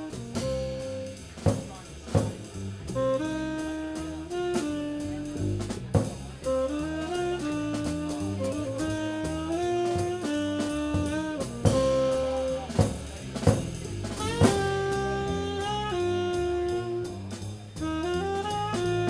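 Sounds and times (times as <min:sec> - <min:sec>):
saxophone melody: 0:00.0 - 0:01.2, 0:02.9 - 0:05.8, 0:06.4 - 0:13.0, 0:14.1 - 0:19.0
double bass line: 0:00.0 - 0:19.0
drum and cymbal hits: 0:00.0 - 0:19.0.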